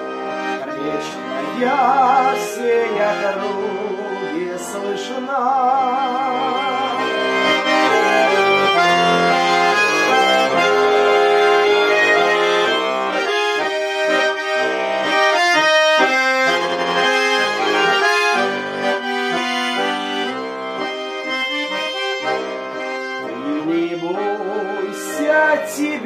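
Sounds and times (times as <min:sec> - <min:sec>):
button accordion playing melody: 0:00.0 - 0:26.0.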